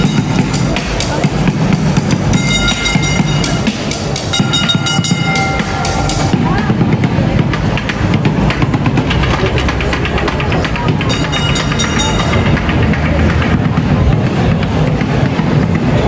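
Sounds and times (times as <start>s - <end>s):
high steady tones: 0.0s - 8.2s
chatter of street crowd: 0.0s - 16.0s
tram rolling along rails: 0.0s - 16.0s.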